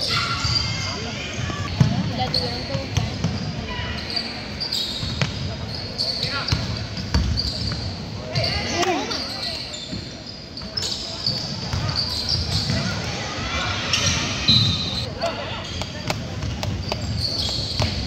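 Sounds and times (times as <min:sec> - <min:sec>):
voices shouting: 0:11.9 - 0:15.5.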